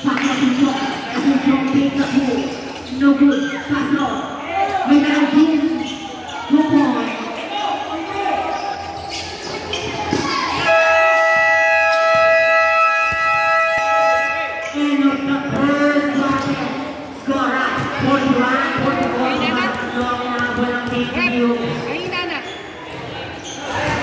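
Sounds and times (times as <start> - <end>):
basketball bouncing on court: 15.2 - 16.7, 17.4 - 22.3.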